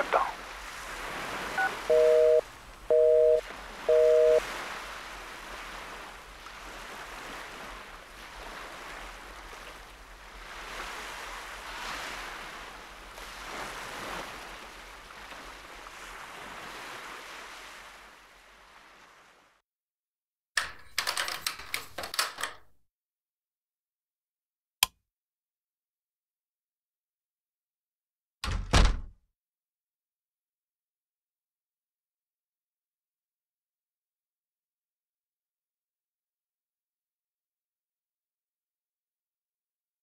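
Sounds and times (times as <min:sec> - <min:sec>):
waves washing on shore: 0:00.0 - 0:19.6
phone busy tone beeping: 0:01.6 - 0:04.4
door latch clicking and rattling: 0:20.6 - 0:22.7.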